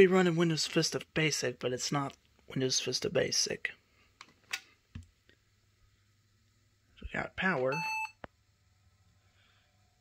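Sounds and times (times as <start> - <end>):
faint low hum: 0.0 - 10.0
laptop power-on beep: 7.7 - 8.2.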